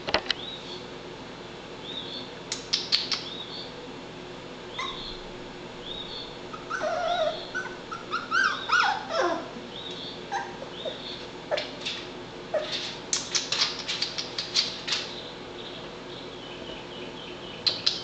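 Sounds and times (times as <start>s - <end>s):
puppy whining and whimpering: 4.7s - 5.2s, 6.0s - 9.6s, 10.3s - 11.7s, 12.5s - 12.9s.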